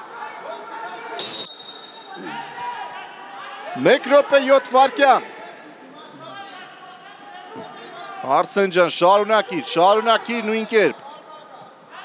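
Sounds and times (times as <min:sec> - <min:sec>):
voices echoing in a hall: 0:00.0 - 0:12.0
whistle blown: 0:01.2 - 0:02.2.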